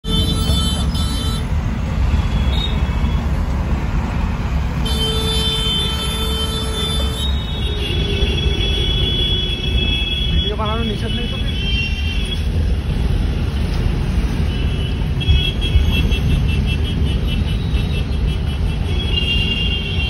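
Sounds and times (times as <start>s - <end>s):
vehicle horns: 0.0s - 3.4s, 4.8s - 12.6s, 14.3s - 20.0s
traffic rumble: 0.0s - 20.0s.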